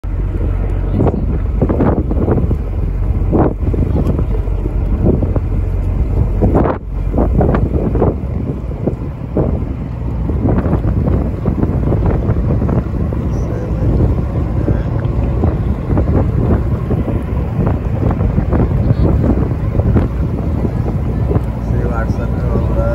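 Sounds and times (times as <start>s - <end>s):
strong wind buffeting microphone: 0.0s - 22.9s.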